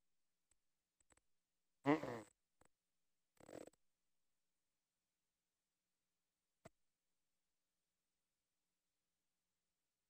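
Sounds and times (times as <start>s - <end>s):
person humming mm-mm: 1.9s - 2.3s.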